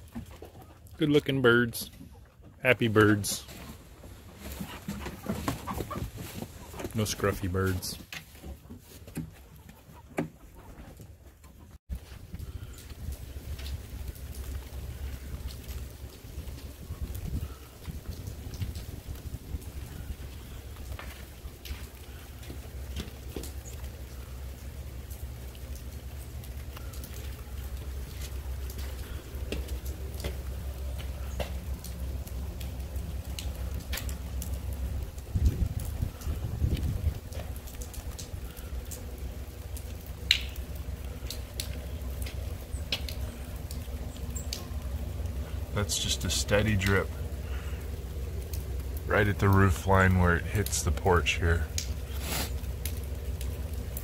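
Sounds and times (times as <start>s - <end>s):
rain rumble: 0.0s - 54.0s
water dripping off roof: 0.0s - 54.0s.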